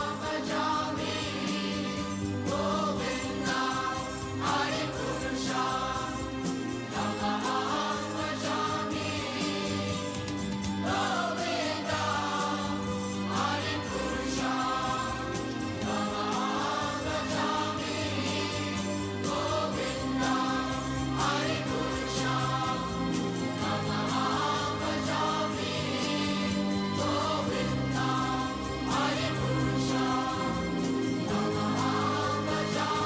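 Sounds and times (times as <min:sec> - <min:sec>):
devotional singing: 0:00.0 - 0:33.0.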